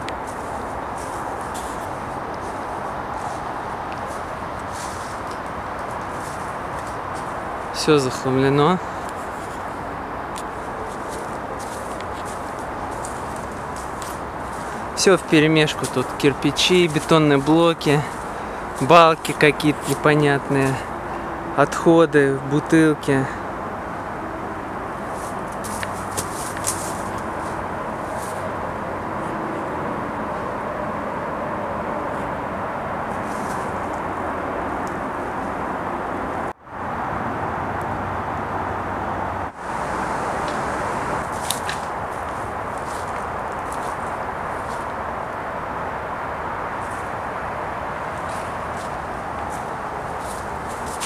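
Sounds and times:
continuous even hiss: 0:00.0 - 0:35.7, 0:36.8 - 0:51.0.

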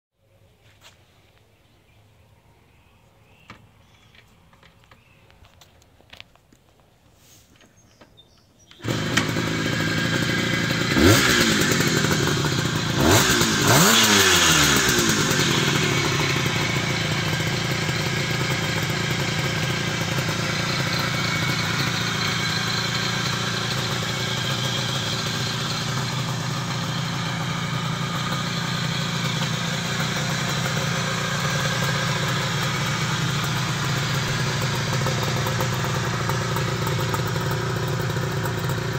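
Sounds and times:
two-stroke engine revving and idling: 0:08.7 - 0:38.9.

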